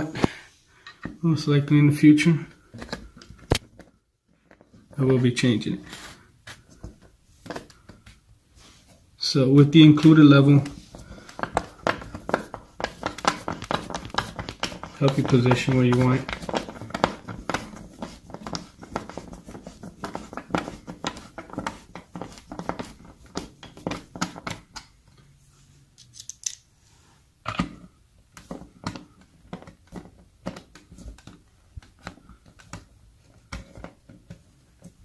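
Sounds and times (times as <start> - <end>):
screwdriver clicks and scrapes: 26.0 - 26.7.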